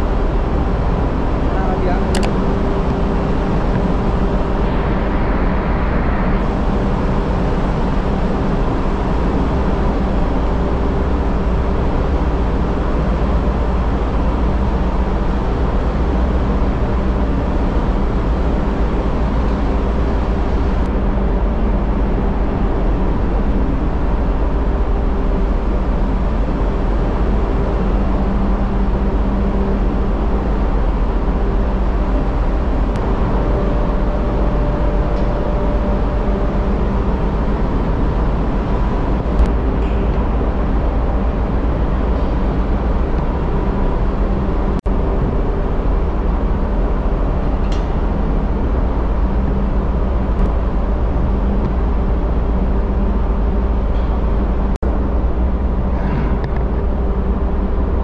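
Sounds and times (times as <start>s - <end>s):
ship machinery drone: 0.0s - 58.0s.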